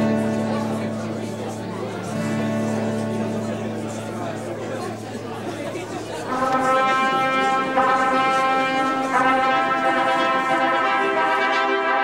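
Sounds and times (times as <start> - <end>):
murky background noise: 0.0 - 12.0
brass fanfare: 6.2 - 12.0.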